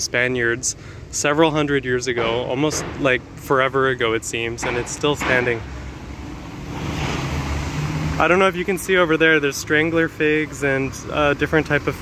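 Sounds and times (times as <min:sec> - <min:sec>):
car passing by: 0:05.8 - 0:08.6.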